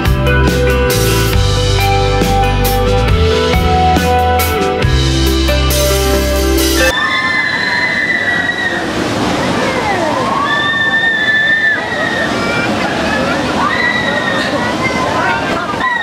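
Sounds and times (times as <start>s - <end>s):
riders screaming: 6.9s - 14.8s
scattered voices: 6.9s - 16.0s.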